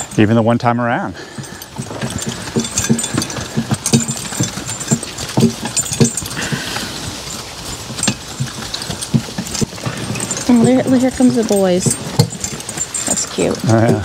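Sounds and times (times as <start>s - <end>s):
harness rattling: 0.0s - 14.0s
muffled hoof thuds on grass: 1.4s - 13.9s.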